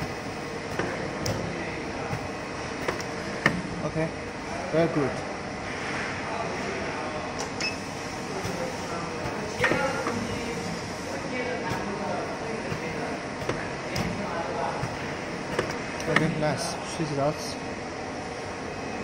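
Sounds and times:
steady hum: 0.0 - 19.0.

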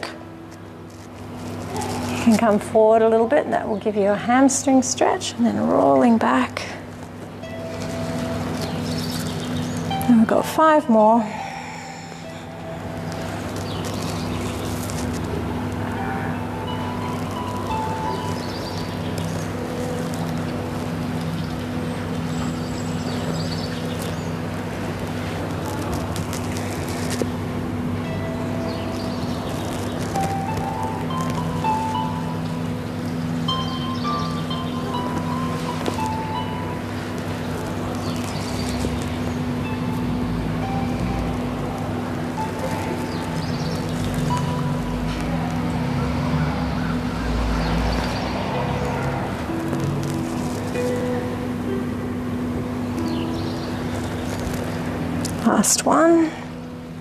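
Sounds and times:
low drone: 6.6 - 57.0.

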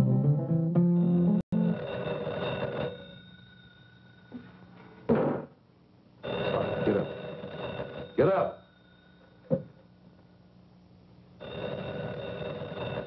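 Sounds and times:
telephone bell ringing: 1.0 - 4.7, 6.2 - 9.5, 11.4 - 13.0.

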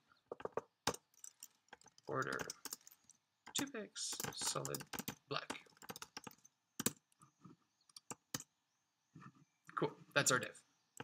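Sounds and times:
computer keys clicking: 0.9 - 7.2, 7.9 - 8.5.

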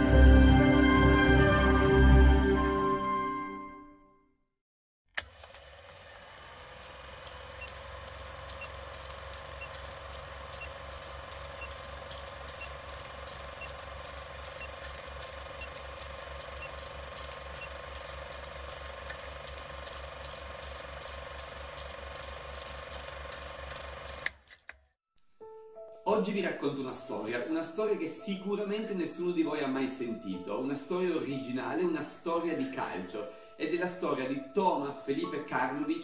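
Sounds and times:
film projector clicking: 5.1 - 24.9
projector hum: 6.8 - 24.4.

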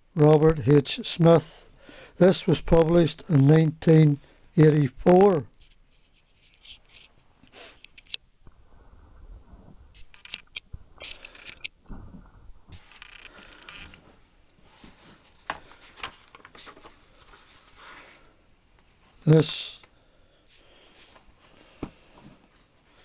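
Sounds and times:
camera handling bumps: 10.0 - 11.7
book pages turning: 12.7 - 14.0, 14.6 - 17.9.

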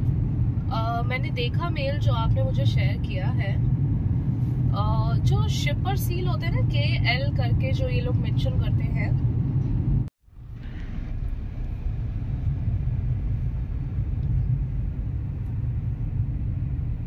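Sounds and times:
car cabin road and engine rumble: 0.0 - 17.0.

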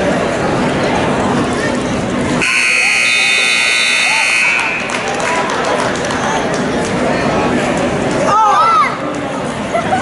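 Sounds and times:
scoreboard buzzer steady tone: 2.4 - 5.0.

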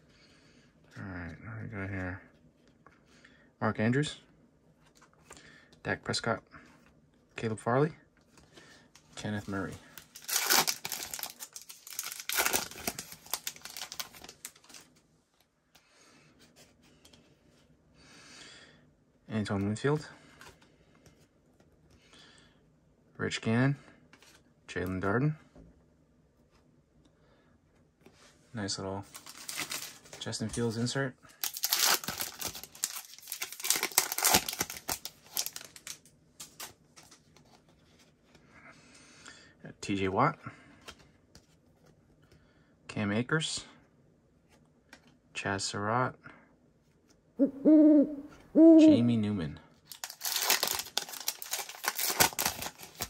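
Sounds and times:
foil card pack tearing and crinkling: 9.6 - 14.8, 29.1 - 30.1, 31.4 - 37.2, 49.9 - 53.0.

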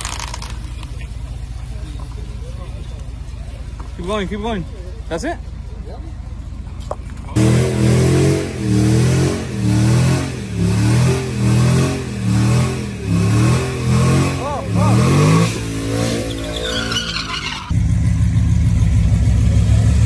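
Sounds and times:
truck engine revving: 7.2 - 20.0
tyre squeal: 16.0 - 17.7.

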